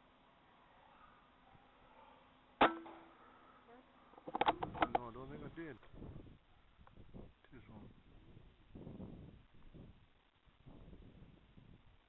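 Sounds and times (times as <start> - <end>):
rifle shot: 2.6 - 3.1
rifle clicks and rattling: 4.2 - 5.1.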